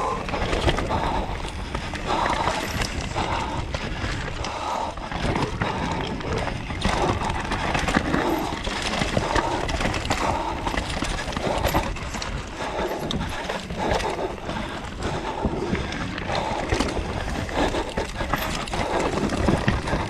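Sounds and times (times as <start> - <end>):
bike knocking and rattling: 0.0 - 20.0
bike tyres rumbling over dirt: 0.0 - 20.0.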